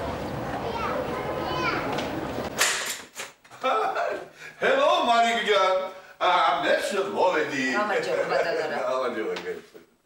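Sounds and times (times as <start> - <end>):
distant children calling: 0.3 - 2.4.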